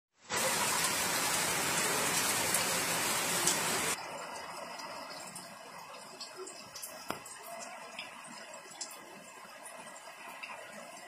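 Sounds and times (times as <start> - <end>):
heavy rain on a flooded street: 0.2 - 11.0.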